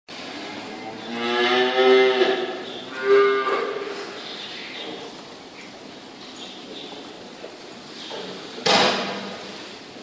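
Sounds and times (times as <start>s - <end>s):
cow mooing: 0.5s - 4.0s.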